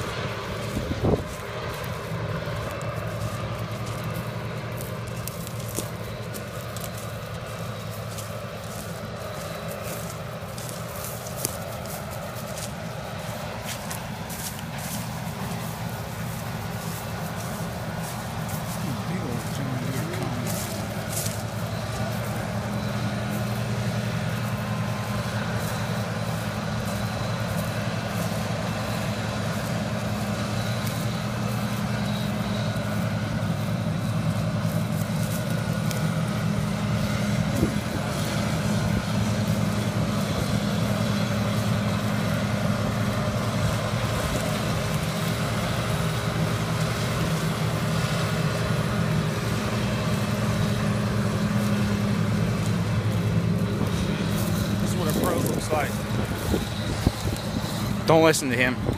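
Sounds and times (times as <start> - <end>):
combine harvester engine drone: 0.0 - 58.9.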